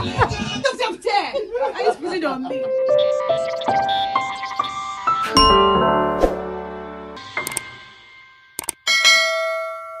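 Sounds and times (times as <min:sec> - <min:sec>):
notification bell ding: 0:05.2 - 0:06.2.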